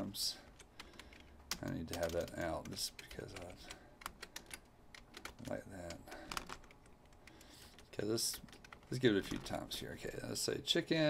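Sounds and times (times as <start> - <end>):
keyboard keys clicking: 0.5 - 9.4.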